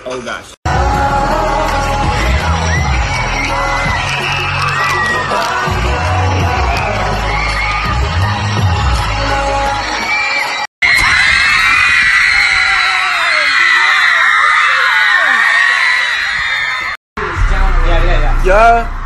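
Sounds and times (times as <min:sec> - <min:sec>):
live pop music with bass beat: 0:00.7 - 0:11.1
audience screaming: 0:01.0 - 0:19.0
fans screaming high-pitched: 0:01.2 - 0:19.0.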